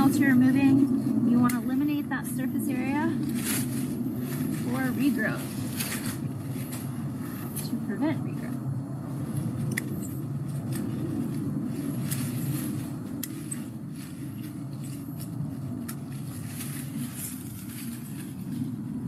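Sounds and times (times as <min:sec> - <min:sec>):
pruners snipping vines: 0:00.0 - 0:08.5, 0:09.5 - 0:18.5
steady low rumble: 0:00.0 - 0:19.0.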